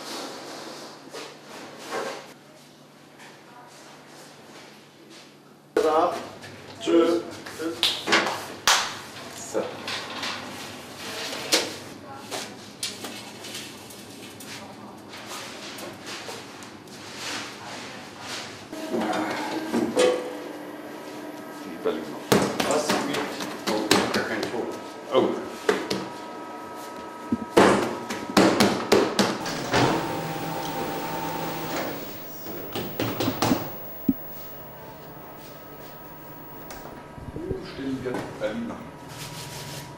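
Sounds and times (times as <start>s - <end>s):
machine humming: 29.4s - 37.0s.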